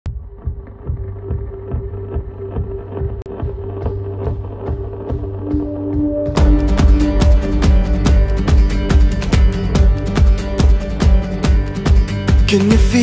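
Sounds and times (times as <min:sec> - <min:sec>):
background music with steady beat: 0:00.1 - 0:13.0.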